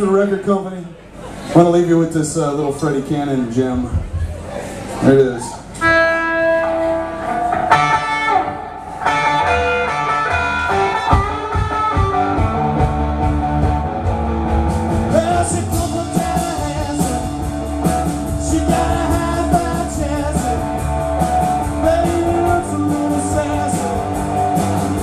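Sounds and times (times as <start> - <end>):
bass and drums: 3.6 - 4.5, 7.2 - 25.0
electric guitar line: 5.8 - 25.0.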